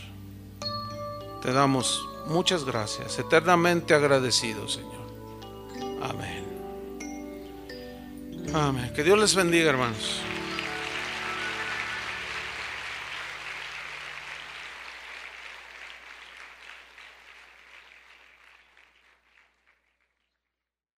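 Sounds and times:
soft sustained music: 0:00.0 - 0:16.4
congregation applauding: 0:09.2 - 0:20.2.

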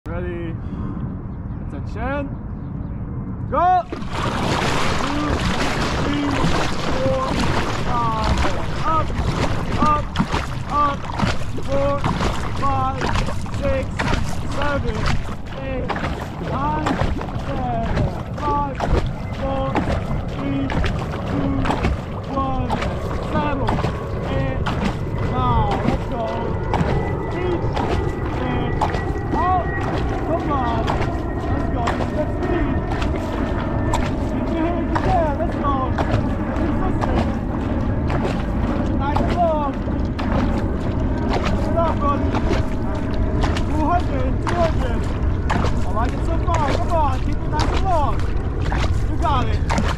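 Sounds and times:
wind rumble on microphone: 0:00.1 - 0:49.9
water rushing along hull: 0:03.6 - 0:49.9
paddle splashes: 0:03.8 - 0:49.9.

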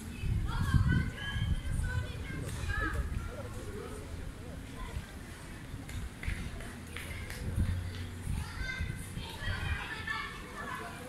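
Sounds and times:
children shouting and chattering: 0:00.0 - 0:11.0.

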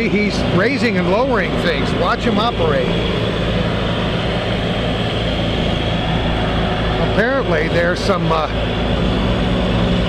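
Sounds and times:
diesel engine drone: 0:00.0 - 0:10.0.

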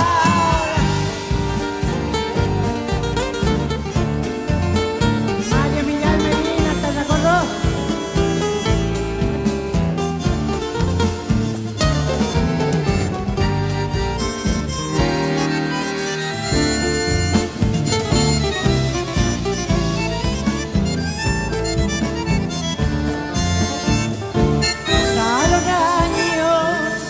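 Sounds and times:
pulsing bass line: 0:00.0 - 0:15.5, 0:16.3 - 0:26.2
bandoneon chords and melody: 0:00.0 - 0:27.0
guitar accompaniment: 0:00.0 - 0:27.0.

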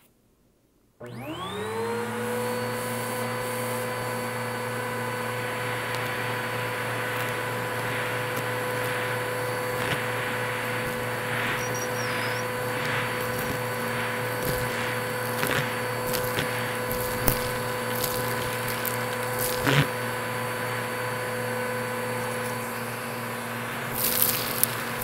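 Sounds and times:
vacuum cleaner motor whine: 0:01.0 - 0:25.0
debris rattling up vacuum hose: 0:04.7 - 0:20.0, 0:23.8 - 0:25.0.

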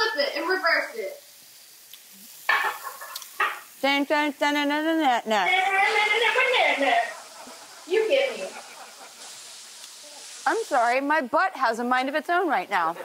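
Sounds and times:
meat sizzling in a skillet: 0:00.0 - 0:13.0.

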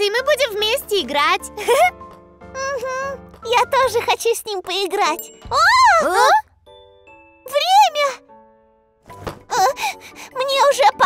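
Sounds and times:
tinkling cartoon jingle: 0:05.0 - 0:06.4.

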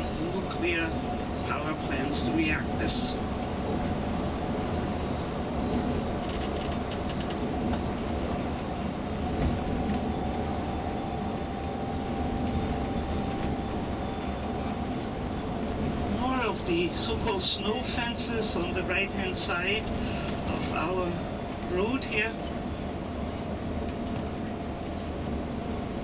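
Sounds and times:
bus engine and road rumble: 0:00.0 - 0:26.0
faint steady whine: 0:07.6 - 0:17.4.

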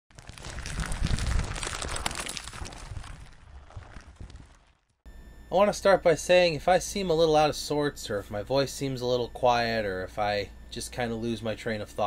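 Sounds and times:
crackling crumbling debris: 0:00.1 - 0:05.0.

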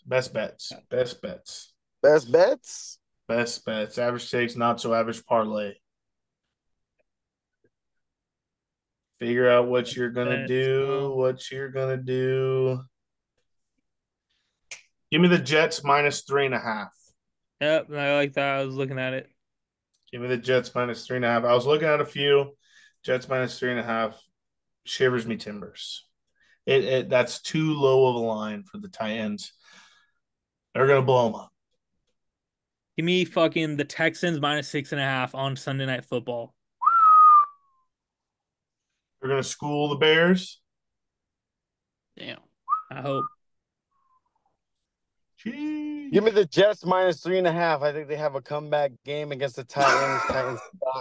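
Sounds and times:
person whistling short note: 0:36.8 - 0:37.6.

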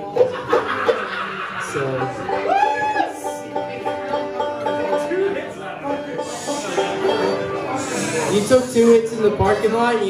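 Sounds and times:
plucked banjo notes: 0:00.0 - 0:10.0
fiddle sliding bowed notes: 0:02.2 - 0:09.0.

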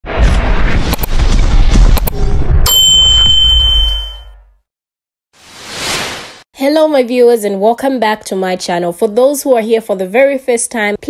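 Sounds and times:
deep rumbling boom: 0:00.0 - 0:02.6
high ringing tone: 0:02.6 - 0:04.6.

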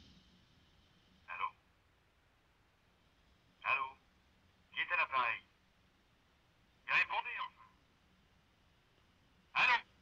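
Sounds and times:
man speaking through telephone: 0:01.3 - 0:01.6, 0:03.6 - 0:04.0, 0:04.7 - 0:05.5, 0:06.9 - 0:07.8, 0:09.6 - 0:09.9.

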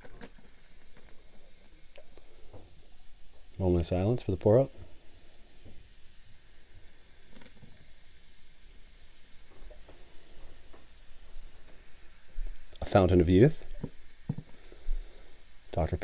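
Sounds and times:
soda fizzing: 0:00.0 - 0:16.0.

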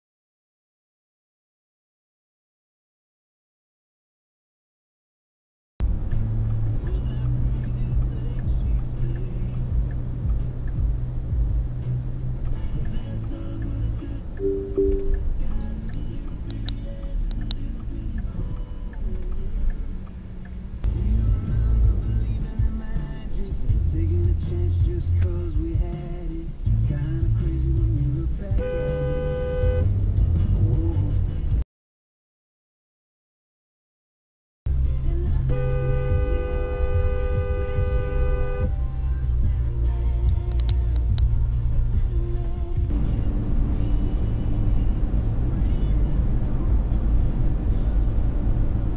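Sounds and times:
background music: 0:05.8 - 0:31.6, 0:34.7 - 0:48.9
car engine and road drone: 0:05.8 - 0:31.6, 0:34.7 - 0:48.9
car horn blast: 0:14.4 - 0:15.2, 0:28.6 - 0:30.0, 0:35.5 - 0:38.7.

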